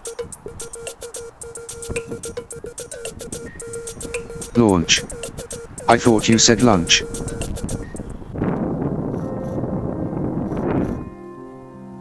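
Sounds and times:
rushing wind-like noise: 0:00.0 - 0:11.2
faint background music: 0:03.6 - 0:07.7.

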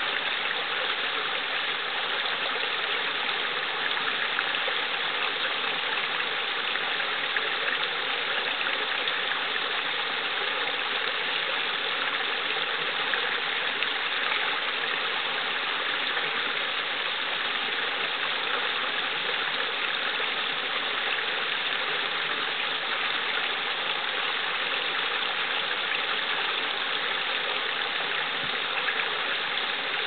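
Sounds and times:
brook babbling over rocks: 0:00.0 - 0:30.0.

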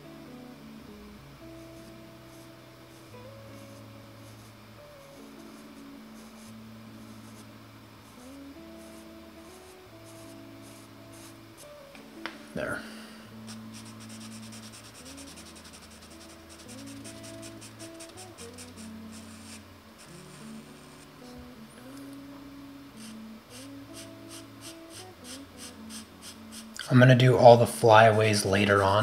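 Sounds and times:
background music of sustained chords: 0:00.0 - 0:29.0
pencil scratching on paper: 0:13.5 - 0:21.1, 0:23.0 - 0:26.7.

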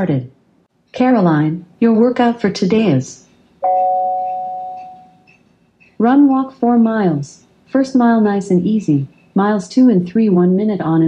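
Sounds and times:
two-tone bell-like chime: 0:03.6 - 0:05.4.

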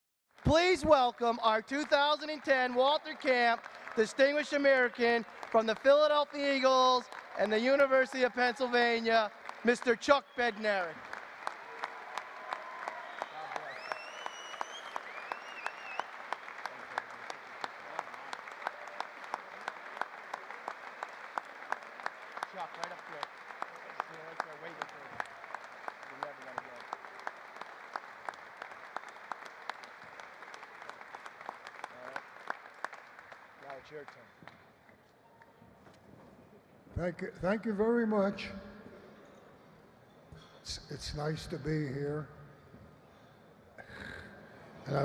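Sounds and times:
audience applauding: 0:00.3 - 0:35.6
close loud claps: 0:00.3 - 0:35.6.

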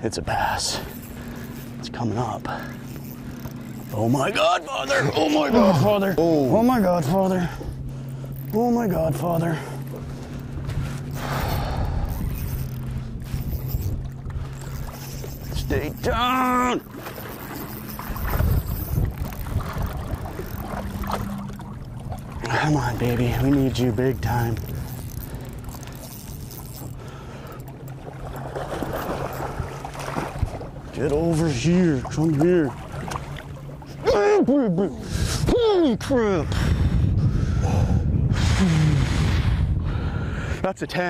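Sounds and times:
boat motor humming: 0:00.0 - 0:41.0
fish splashing in water: 0:26.8 - 0:30.8.

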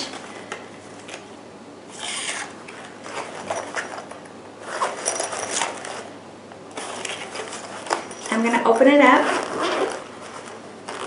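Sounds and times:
fabric pouch and card rustling: 0:06.8 - 0:11.0.

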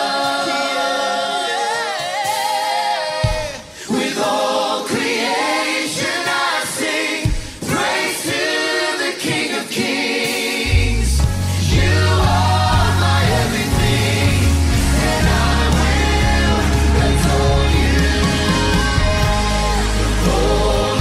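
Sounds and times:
choir singing in harmony: 0:00.0 - 0:21.0.

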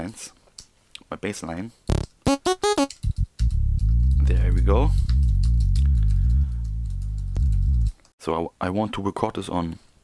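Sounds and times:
ticks: 0:01.9 - 0:03.6
synth bass line: 0:01.9 - 0:07.9.

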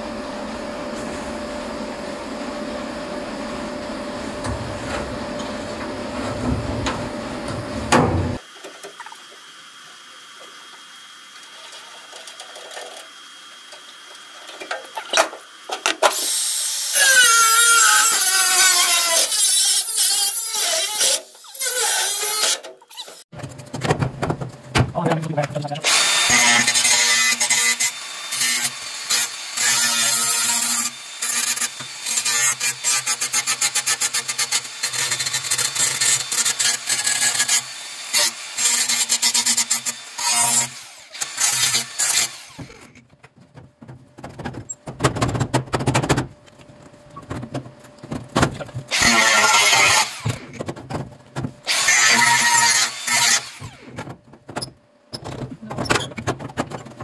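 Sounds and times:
angle grinder cutting steel: 0:16.1 - 0:23.2, 0:25.8 - 0:43.0, 0:48.9 - 0:50.6, 0:51.7 - 0:54.0.

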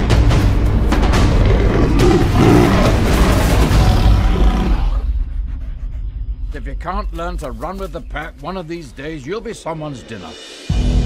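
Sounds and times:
panther roaring: 0:01.3 - 0:05.2.

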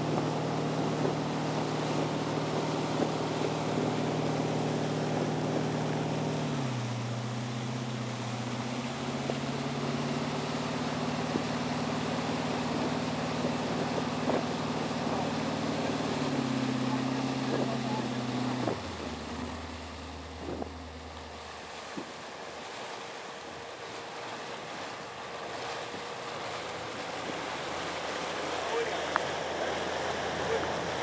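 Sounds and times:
motorboat engine: 0:00.0 - 0:31.0
water rushing and splashing: 0:00.0 - 0:31.0.

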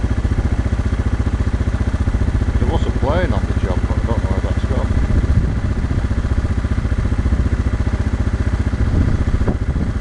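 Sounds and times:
helicopter rotor beating: 0:00.0 - 0:10.0.

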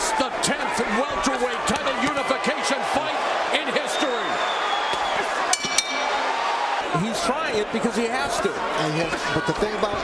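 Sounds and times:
arena crowd noise: 0:00.0 - 0:10.0
boxing ring bell: 0:05.5 - 0:06.4.

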